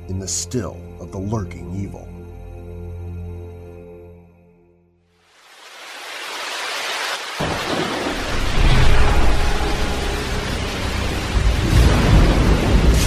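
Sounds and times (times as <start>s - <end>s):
rain: 5.2s - 13.0s
rolling thunder: 7.4s - 13.0s.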